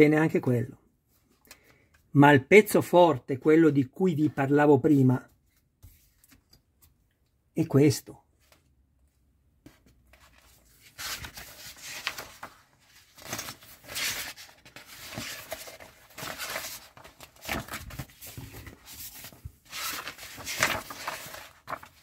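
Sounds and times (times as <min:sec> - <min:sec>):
magazine pages rustling: 0:09.6 - 0:22.0.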